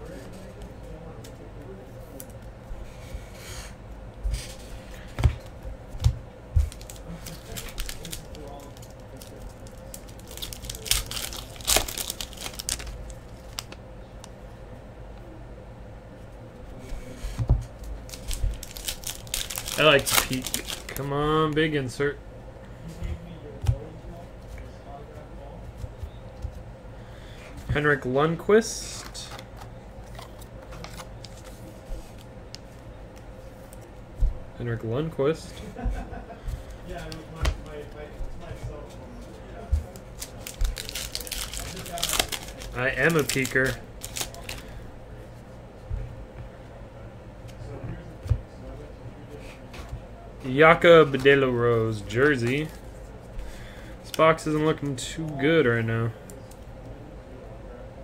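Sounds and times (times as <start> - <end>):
steady low hum: 0.0 - 58.0
wrapper crinkling and tearing: 6.7 - 13.8, 18.1 - 21.1, 40.2 - 44.7
trading cards clicking and scraping: 29.0 - 32.9.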